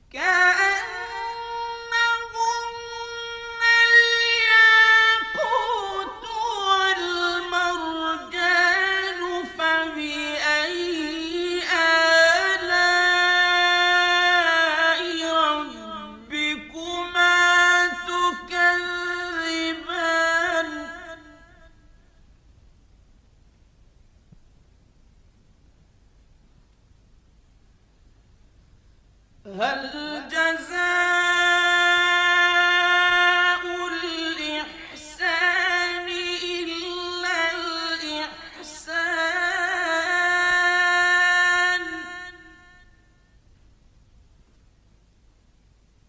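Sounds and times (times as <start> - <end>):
person chanting a recitation: 0.1 - 21.8, 29.4 - 43.0.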